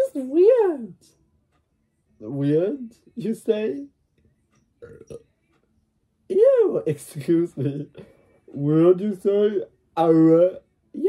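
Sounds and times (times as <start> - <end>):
person burping: 4.8 - 5.2.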